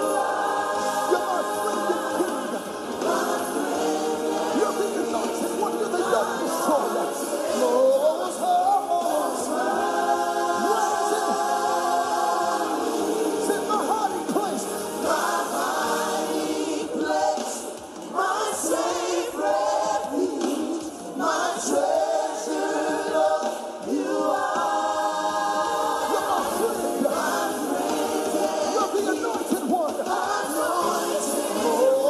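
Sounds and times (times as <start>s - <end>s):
choir singing gospel song: 0.0s - 32.0s.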